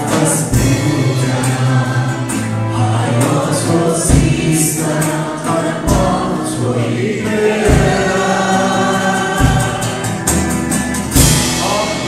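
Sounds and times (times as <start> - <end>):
acoustic guitar: 0.0 - 12.0
people singing worship song: 0.0 - 12.0
low drum thump: 7.6 - 8.3.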